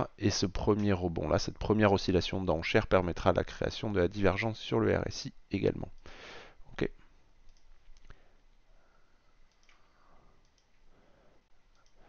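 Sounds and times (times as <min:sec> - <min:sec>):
computer mouse clicks: 0:07.5 - 0:08.2, 0:09.5 - 0:10.8, 0:11.7 - 0:12.0.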